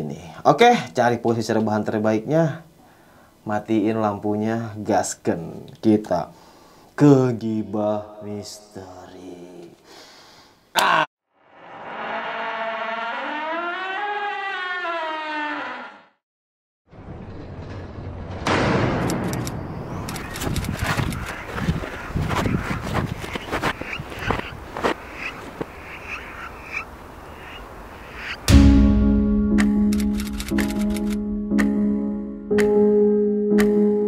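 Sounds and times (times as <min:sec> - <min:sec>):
faint frog-like animal calls: 0:23.3 - 0:28.5.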